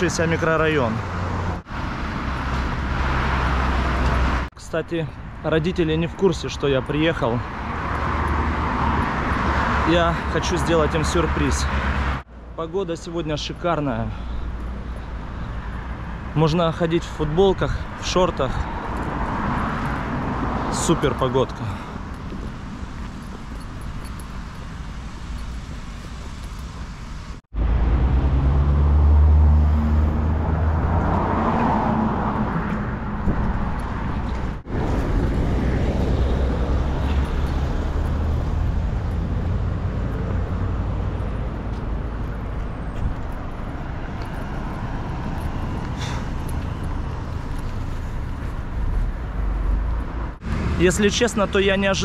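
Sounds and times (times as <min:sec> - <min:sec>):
traffic rumble: 0:00.0 - 0:52.0.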